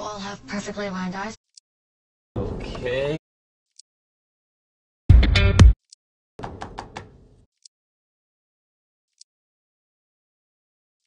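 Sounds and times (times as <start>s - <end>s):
quick knocks: 6.4s - 7.2s.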